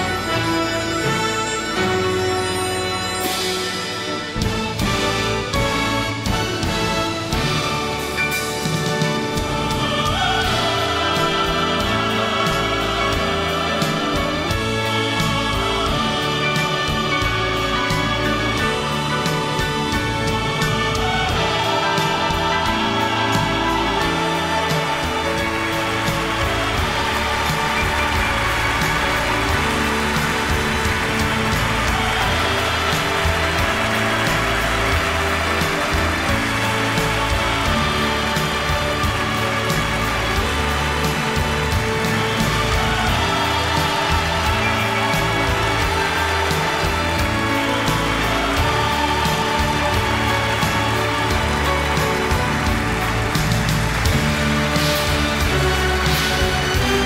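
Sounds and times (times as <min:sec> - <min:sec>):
audience applause: 0:00.0 - 0:57.0
orchestra with brass playing: 0:00.0 - 0:57.0.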